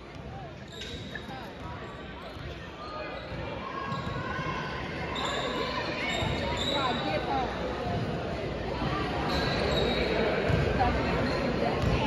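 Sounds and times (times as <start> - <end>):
voices in echoing gym: 0.0 - 12.0.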